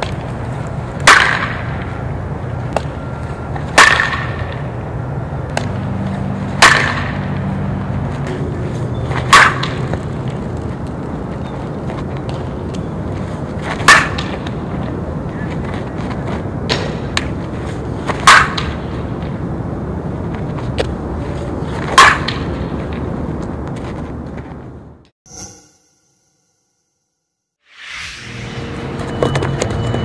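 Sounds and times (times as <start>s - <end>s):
softball bat cracking balls: 0.0s - 4.8s, 5.5s - 19.5s, 20.3s - 24.5s.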